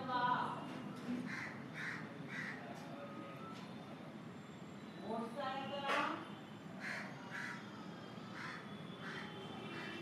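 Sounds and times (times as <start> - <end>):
crow cawing: 1.3 - 2.6, 6.8 - 7.7, 8.3 - 9.4.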